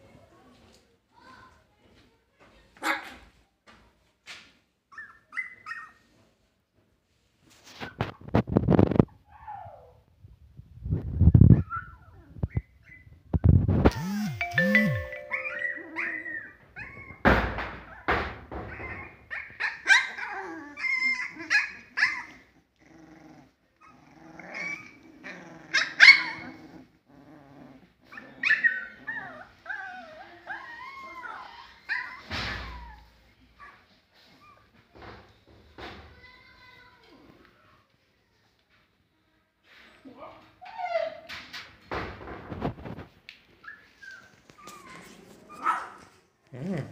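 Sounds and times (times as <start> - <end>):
puppies yipping and whimpering: 28.2 - 33.0.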